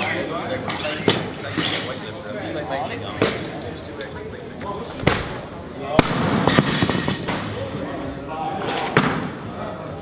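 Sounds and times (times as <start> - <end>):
chatter of training hall: 0.0 - 10.0.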